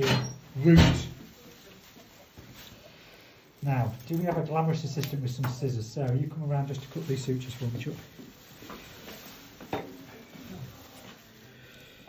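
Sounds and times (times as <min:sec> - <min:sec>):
surgical instruments handling: 0:03.6 - 0:11.4.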